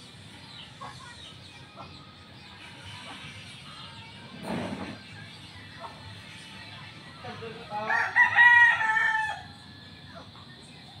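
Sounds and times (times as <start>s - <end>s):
rooster crowing: 7.7s - 9.6s.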